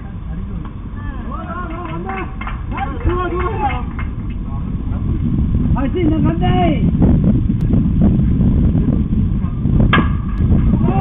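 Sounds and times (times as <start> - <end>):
steady low rumble: 0.0 - 11.0
players shouting: 0.9 - 4.0.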